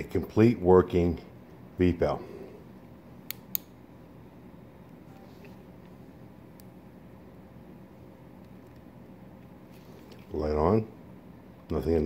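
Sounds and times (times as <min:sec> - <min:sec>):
low room hum: 0:00.0 - 0:12.0
switch clicks: 0:03.2 - 0:03.8.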